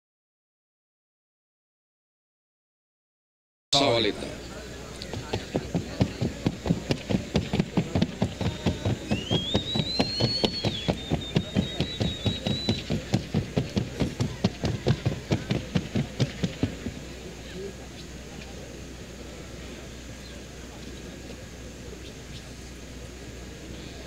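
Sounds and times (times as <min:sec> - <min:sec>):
horse hooves on hard track: 0:05.1 - 0:17.0
thin rising whistle: 0:09.0 - 0:13.1.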